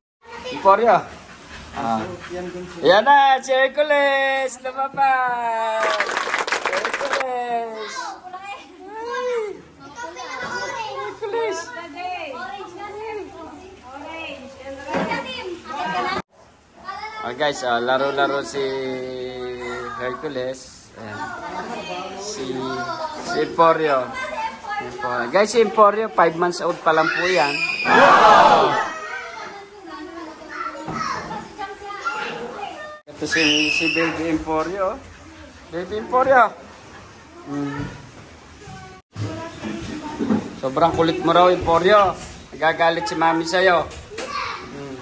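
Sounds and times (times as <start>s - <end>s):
children calling and chattering: 0.2s - 45.0s.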